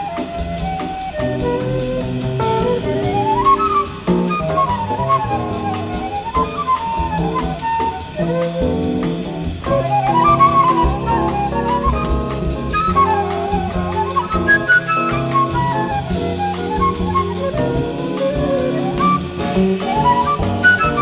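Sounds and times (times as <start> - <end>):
drum kit cymbal beat: 0.0 - 21.0
flute playing fast runs: 0.0 - 21.0
piano: 0.0 - 21.0
upright bass: 1.4 - 5.7, 8.0 - 21.0.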